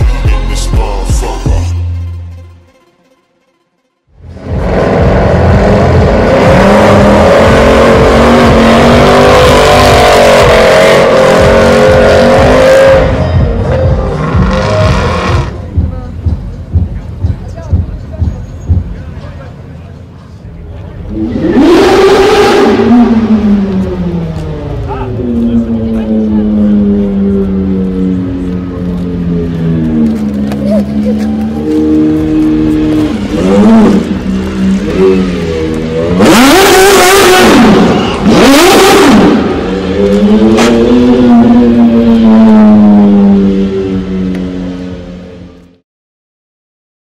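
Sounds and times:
sports car engine revving: 4.2s - 16.2s, 21.0s - 45.8s.

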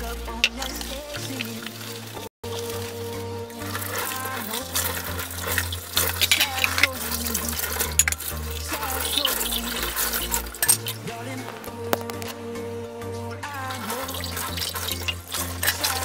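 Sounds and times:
running tap water: 0.0s - 11.0s, 13.7s - 16.0s
water splashing: 0.0s - 12.5s, 13.4s - 16.0s
background music: 0.0s - 16.0s
cups clinking: 3.7s - 11.0s.

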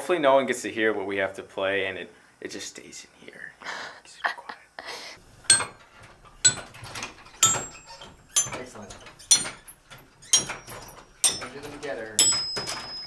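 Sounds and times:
playing lever clunk: 5.5s - 13.0s.

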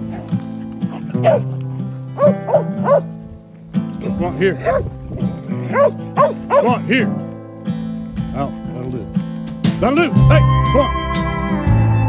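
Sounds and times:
background music: 0.0s - 12.0s
dog barking: 0.9s - 1.5s, 2.2s - 3.1s, 4.6s - 4.9s, 5.7s - 6.8s.

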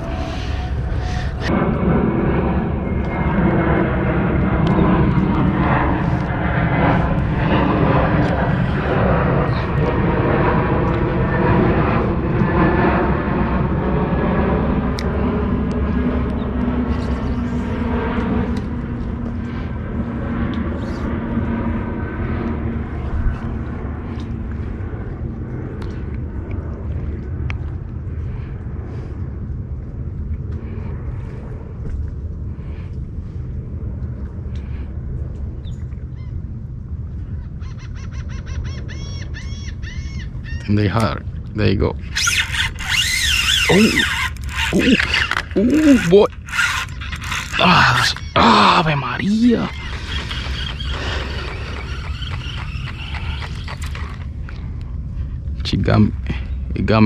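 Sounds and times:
loud engine drone: 0.0s - 36.0s, 40.3s - 57.0s.

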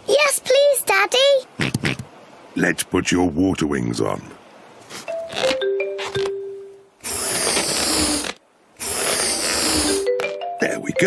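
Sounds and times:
squeaky rubbery tones: 1.6s - 2.1s, 4.9s - 6.4s, 7.0s - 10.4s.

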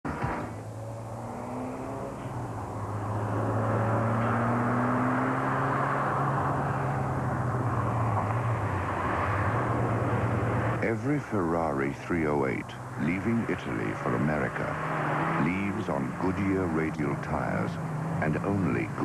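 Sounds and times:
distant car engine: 0.0s - 19.0s.

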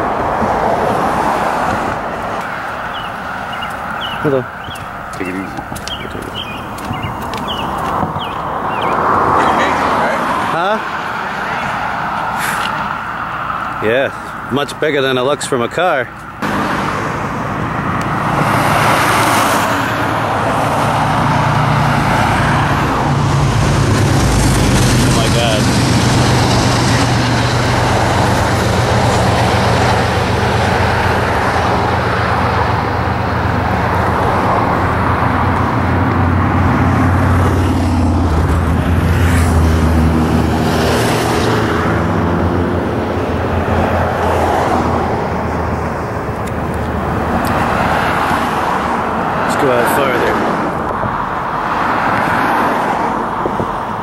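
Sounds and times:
road traffic passing: 0.0s - 54.0s.

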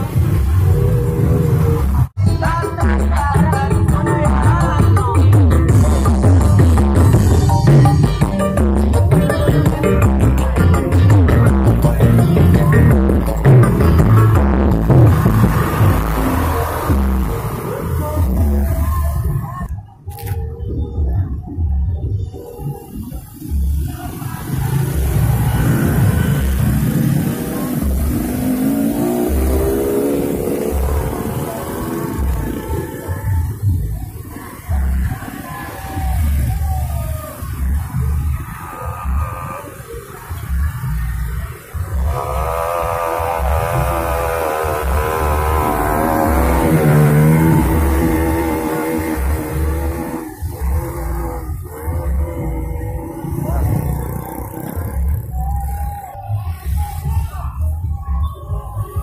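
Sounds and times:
motorcycle and car engines passing: 0.0s - 2.2s, 9.1s - 19.4s, 23.1s - 57.9s
music playing: 0.0s - 59.0s.

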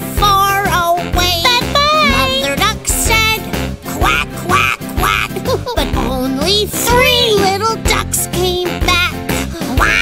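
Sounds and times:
cartoon background music: 0.3s - 10.0s.

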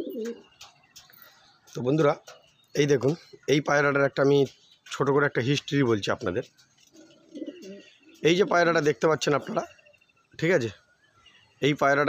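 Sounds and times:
pigeon cooing: 0.0s - 0.7s, 6.9s - 8.6s, 9.2s - 9.9s.

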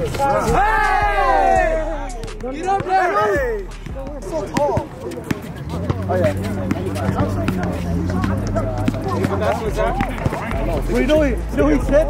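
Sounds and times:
sneakers hitting concrete court: 0.0s - 12.0s
player shouting: 0.1s - 4.8s
basketball bouncing on concrete: 2.2s - 12.0s.

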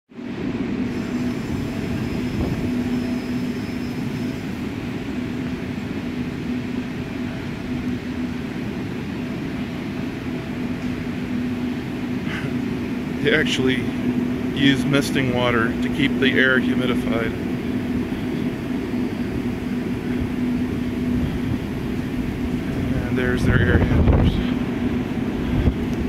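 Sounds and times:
air handlers rumbling: 0.1s - 26.0s
constant hum: 0.1s - 26.0s.

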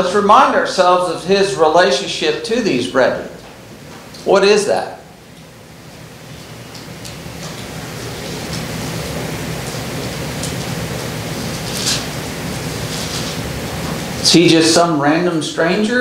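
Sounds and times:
room background hiss: 0.0s - 16.0s.

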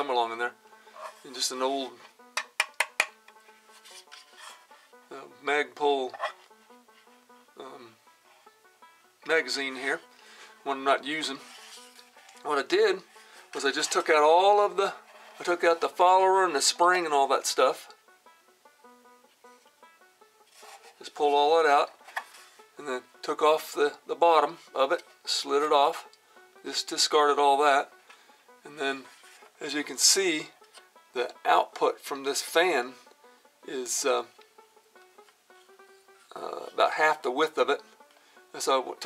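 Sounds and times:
plucked string instrument: 0.0s - 39.0s
soft background music: 0.0s - 39.0s.

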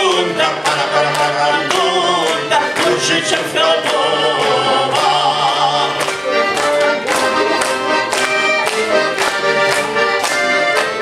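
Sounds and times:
male voices singing a held chord: 0.0s - 6.1s.

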